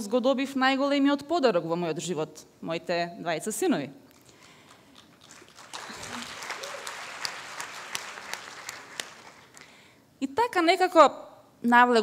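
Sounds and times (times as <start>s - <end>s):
audience applauding: 4.4s - 9.7s.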